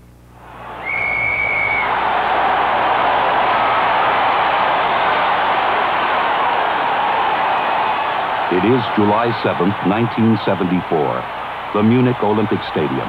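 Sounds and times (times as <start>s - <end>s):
stadium crowd cheering: 0.4s - 13.0s
referee's whistle blast: 0.5s - 2.2s.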